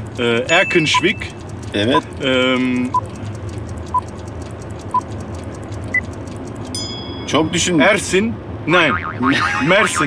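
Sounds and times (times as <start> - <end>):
fast clock ticking: 0.0 - 7.9
short beeps: 0.5 - 1.3
ringing tone: 6.8 - 7.8.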